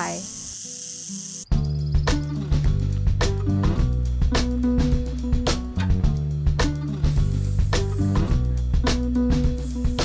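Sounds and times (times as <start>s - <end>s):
rattlesnake tail rattle buzzing: 0.0s - 1.5s, 7.1s - 8.2s, 9.6s - 10.0s
music with a beat: 1.5s - 10.0s.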